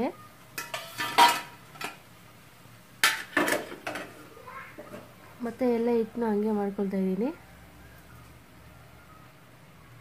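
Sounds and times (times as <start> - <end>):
steel utensils clinking: 0.6 - 2.0.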